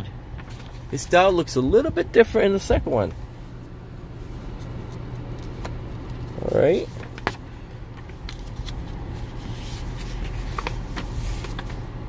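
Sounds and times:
steady low hum: 0:00.0 - 0:12.0
paper pages rustling: 0:04.4 - 0:12.0.

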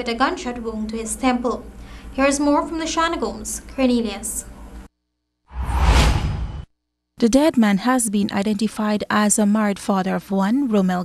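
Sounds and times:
deep low rumble: 0:05.5 - 0:06.7
whoosh sound effect: 0:05.5 - 0:06.7.

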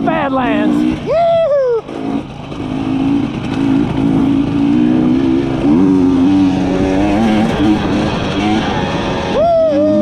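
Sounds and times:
two-stroke motorcycle engine: 0:00.0 - 0:10.0.

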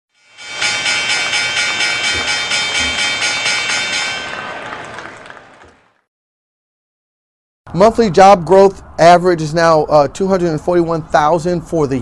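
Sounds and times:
synthesized chord with pulsing shimmer: 0:00.2 - 0:04.7.

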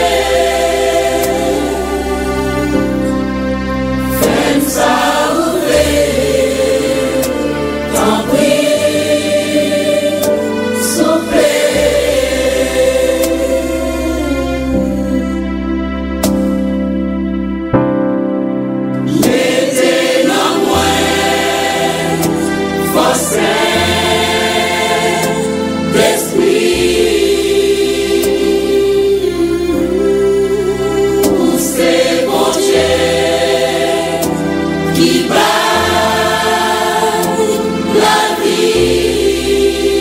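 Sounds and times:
choir singing held notes: 0:00.0 - 0:03.4, 0:04.0 - 0:15.2, 0:19.0 - 0:40.0
bass line: 0:00.0 - 0:40.0.

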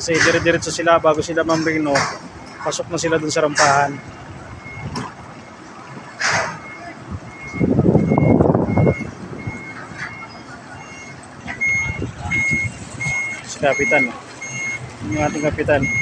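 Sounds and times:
truck reversing alarm beeping: 0:00.0 - 0:16.0.

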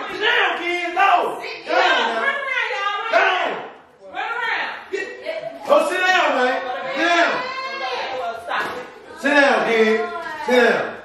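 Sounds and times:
people shouting and talking: 0:00.0 - 0:11.0.

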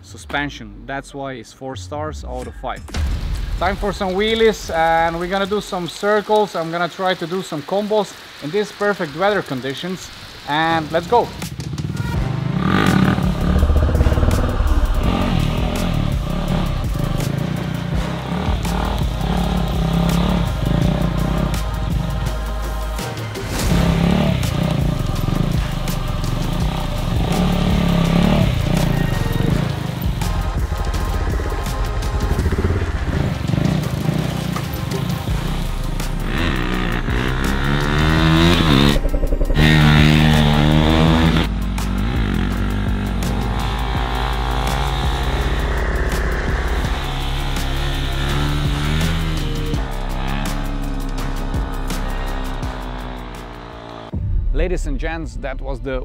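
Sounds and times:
background music: 0:00.0 - 0:56.0
motorcycle engine revving: 0:10.9 - 0:54.2.

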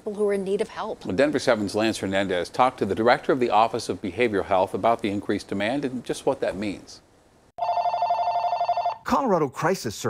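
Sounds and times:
telephone ringing two-tone trill: 0:07.6 - 0:09.0.

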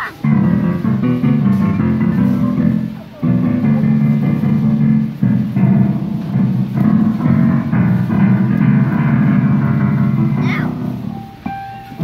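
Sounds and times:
digital piano chords: 0:00.0 - 0:12.0.

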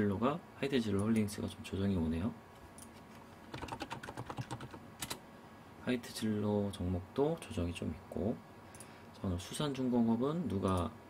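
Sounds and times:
computer keyboard typing: 0:03.5 - 0:05.2.

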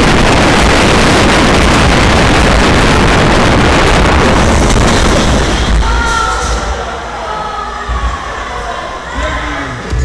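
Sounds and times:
low rumble of roller coaster train: 0:00.0 - 0:07.2
riders cheering and shouting: 0:05.7 - 0:09.9.

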